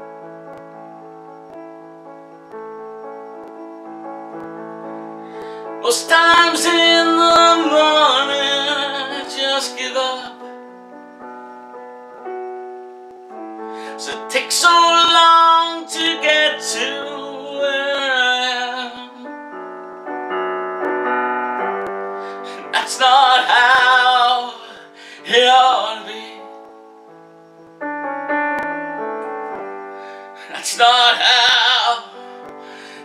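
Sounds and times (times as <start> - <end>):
piano playing: 0.0 - 33.0
man singing: 5.7 - 10.5, 13.8 - 19.4, 22.3 - 26.6, 30.4 - 33.0.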